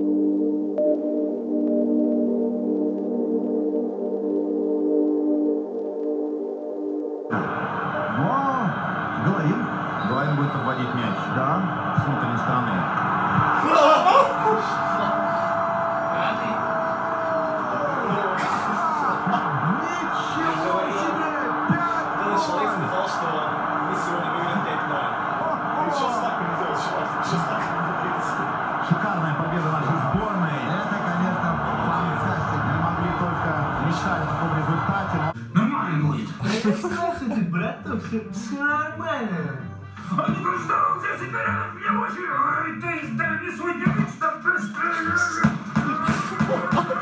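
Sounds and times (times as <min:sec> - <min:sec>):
stadium crowd shouting and chanting: 0:07.3 - 0:35.4.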